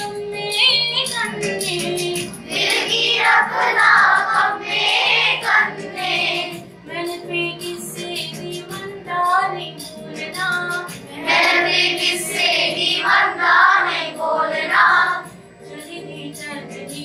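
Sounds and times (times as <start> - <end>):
children singing folk song: 2.4 - 6.6, 10.2 - 15.3.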